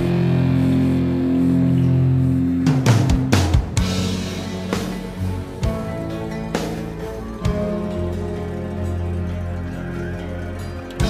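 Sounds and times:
funk metal rock music: 0.0s - 11.0s
guitar chord ringing: 0.0s - 11.0s.

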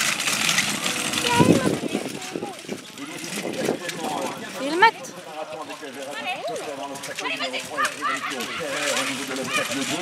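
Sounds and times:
people calling out: 7.2s - 10.0s.

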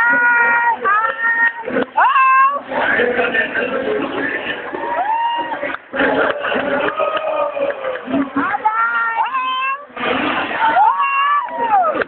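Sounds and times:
spectators shouting whoops: 4.6s - 12.0s.

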